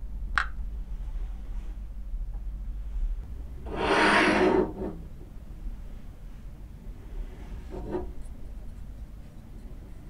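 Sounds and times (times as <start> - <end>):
low steady background hum: 0.0 - 10.0
rubbing scrape: 3.7 - 5.0, 7.4 - 8.3.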